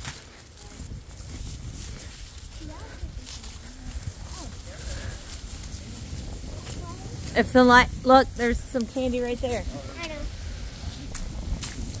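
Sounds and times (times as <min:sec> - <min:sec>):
person speaking: 0:07.4 - 0:10.2.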